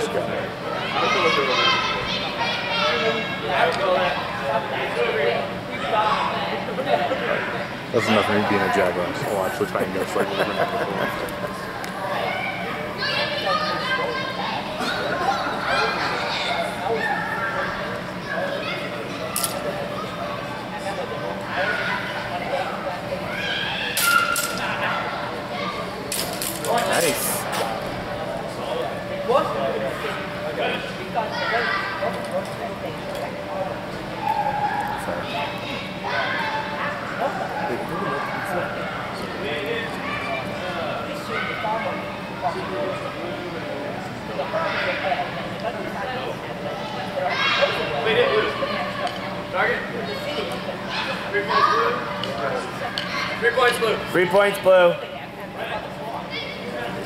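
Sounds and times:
chatter of voices: 0.0s - 57.0s
people talking and calling out: 0.0s - 57.0s.

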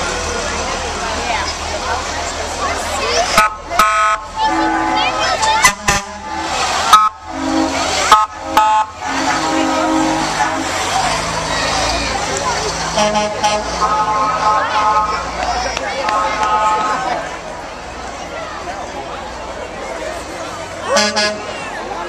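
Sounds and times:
crowd chatter: 0.0s - 22.0s
fire engine horn blasts: 3.2s - 11.5s, 12.9s - 15.4s, 16.0s - 17.2s, 20.9s - 21.6s.

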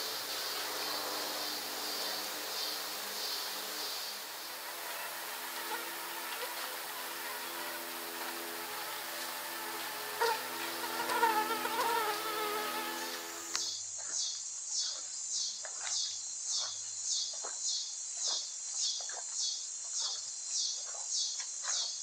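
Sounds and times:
flying insect buzzing: 0.0s - 13.7s.

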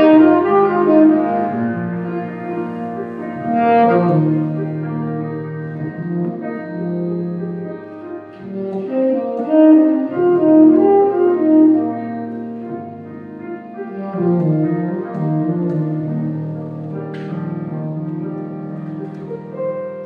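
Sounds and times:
piano accompaniment: 0.0s - 20.0s
saxophone solo: 0.0s - 20.0s.

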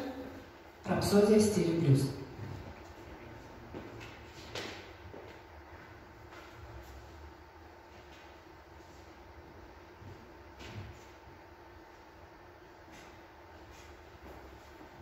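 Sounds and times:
faint steady hum: 0.0s - 15.0s.

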